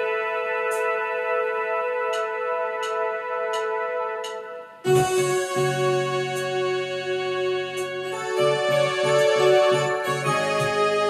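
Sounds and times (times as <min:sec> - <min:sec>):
synthesizer chord: 0:00.0 - 0:11.0.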